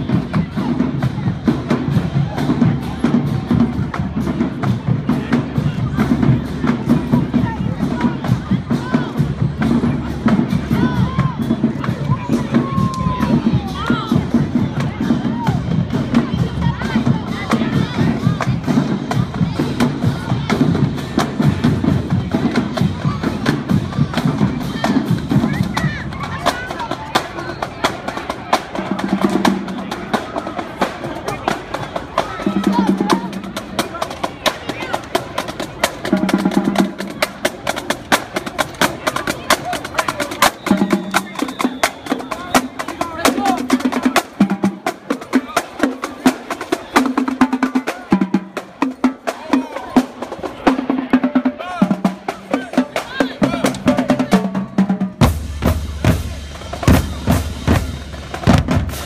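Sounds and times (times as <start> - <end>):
bass drums: 0.0 - 59.0
snare drum strokes and rolls: 0.0 - 59.0.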